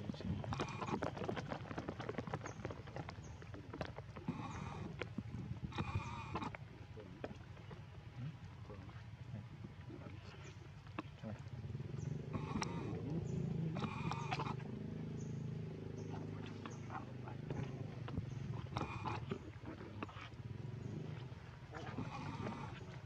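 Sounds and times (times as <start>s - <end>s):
low steady murmur: 0.0s - 23.0s.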